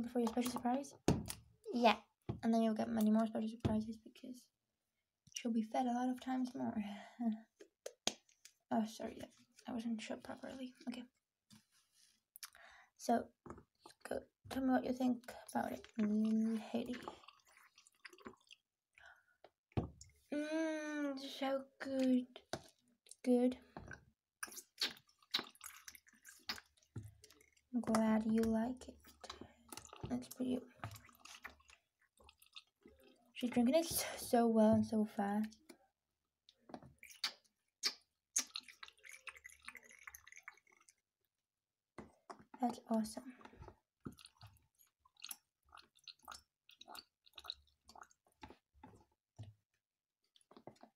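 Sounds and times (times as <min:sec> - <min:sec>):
liquid dripping and bubbling: 0:00.0 - 0:04.2, 0:12.4 - 0:20.3, 0:21.4 - 0:35.9, 0:36.5 - 0:41.2, 0:42.0 - 0:50.9
faint wet clicks: 0:00.1 - 0:03.7, 0:07.3 - 0:09.7, 0:12.4 - 0:12.8, 0:13.5 - 0:20.3, 0:21.8 - 0:34.1, 0:35.2 - 0:41.1, 0:42.0 - 0:50.9.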